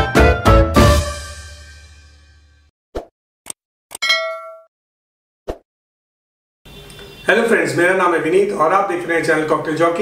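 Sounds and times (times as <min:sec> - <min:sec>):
music: 0:00.0 - 0:02.7
bright ding: 0:04.0 - 0:04.7.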